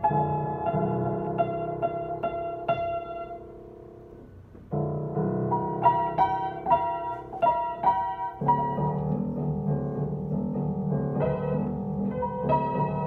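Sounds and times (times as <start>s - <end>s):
child playing piano chords: 0.0s - 13.0s.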